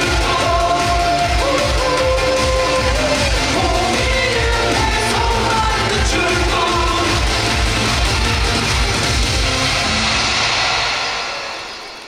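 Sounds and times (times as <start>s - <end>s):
upbeat pop song with singing: 0.0s - 9.1s.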